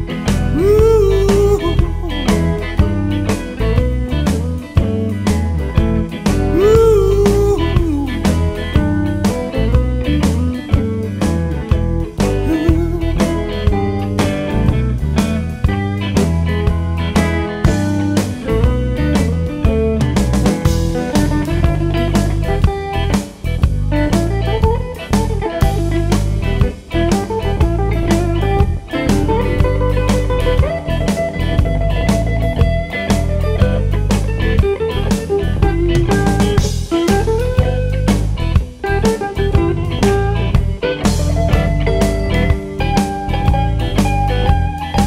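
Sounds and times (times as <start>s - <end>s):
bass guitar: 0.0s - 45.0s
electric guitar lead: 0.0s - 45.0s
drum kit steady beat: 0.4s - 3.1s, 5.8s - 9.5s, 12.2s - 15.9s, 19.2s - 45.0s.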